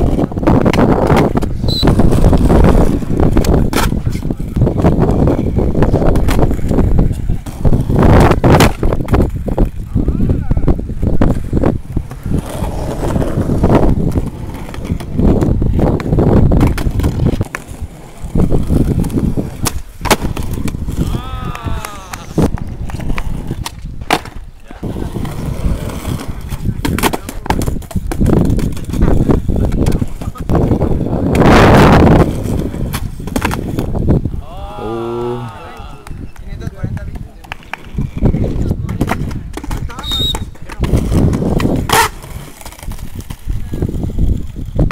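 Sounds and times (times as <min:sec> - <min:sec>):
skateboard slapping down: 0:00.0 - 0:09.9, 0:11.0 - 0:34.0, 0:35.5 - 0:44.9
skateboard tail popping: 0:00.0 - 0:09.9, 0:10.8 - 0:34.4, 0:35.4 - 0:44.9
skateboard wheels rolling on concrete: 0:00.0 - 0:44.9.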